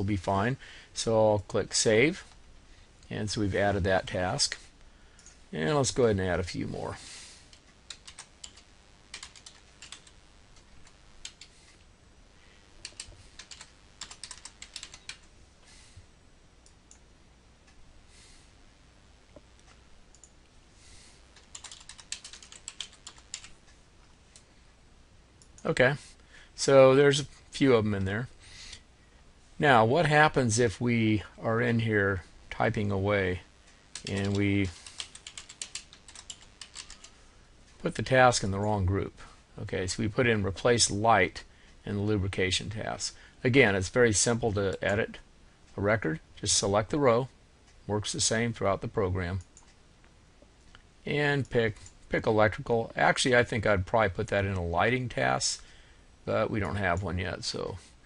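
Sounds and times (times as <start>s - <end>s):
computer keyboard typing: 7.5s - 11.5s, 12.8s - 15.3s, 21.4s - 23.6s, 33.9s - 37.2s.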